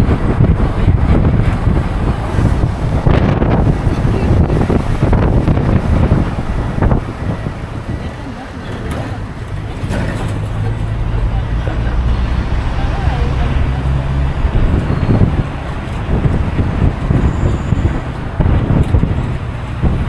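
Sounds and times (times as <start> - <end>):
minibus engine running: 0.0 - 20.0
road noise: 0.0 - 20.0
wind buffeting microphone: 0.0 - 20.0.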